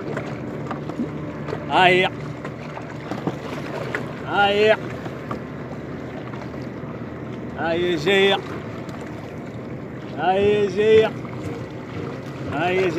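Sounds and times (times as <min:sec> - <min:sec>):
sea noise: 0:00.0 - 0:12.9
wind: 0:00.0 - 0:12.9
man calling out: 0:01.7 - 0:02.2, 0:04.2 - 0:04.8, 0:10.2 - 0:11.2.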